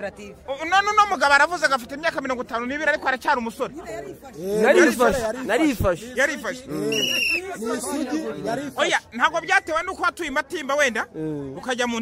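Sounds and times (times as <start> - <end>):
human voices: 6.0 - 8.8
high whistle-like tone: 6.9 - 7.5.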